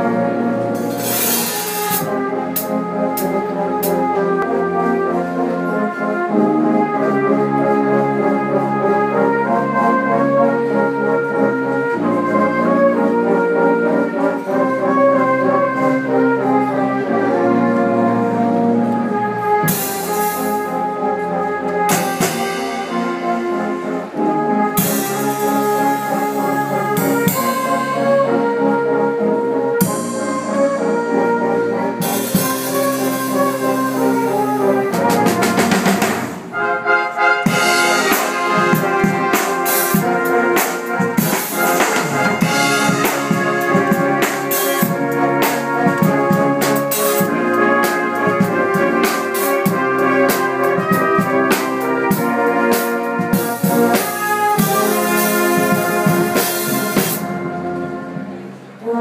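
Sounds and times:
brass band playing chords: 0.0 - 59.0
percussion crashes: 0.8 - 2.1, 37.5 - 45.0.

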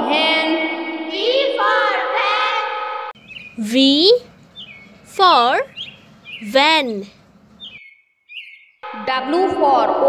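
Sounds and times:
faint bird chirps: 3.2 - 8.8.

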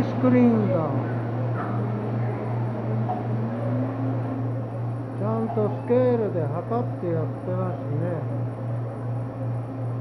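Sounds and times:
refrigeration machine hum: 0.0 - 10.0.

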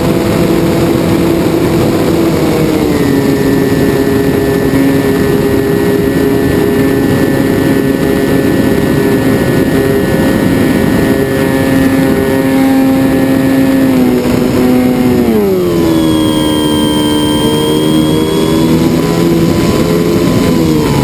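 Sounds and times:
propeller plane engine running: 0.0 - 21.0
wind rush: 0.0 - 21.0.

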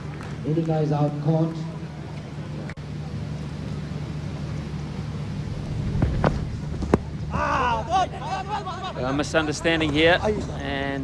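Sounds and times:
low ambient hum: 0.0 - 11.0.

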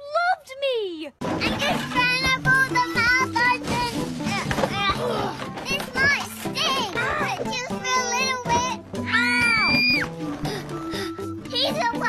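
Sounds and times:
background music: 0.4 - 12.0
children shouting and squealing: 1.5 - 10.2.

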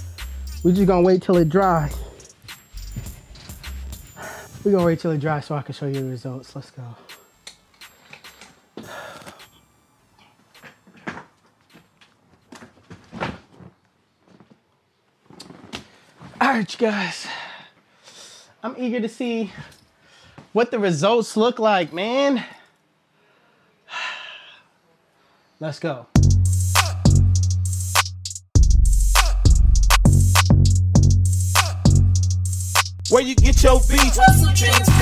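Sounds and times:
man gasping: 8.8 - 9.6.

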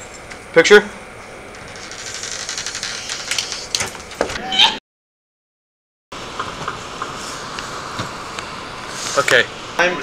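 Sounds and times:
steady hiss: 6.2 - 10.0.

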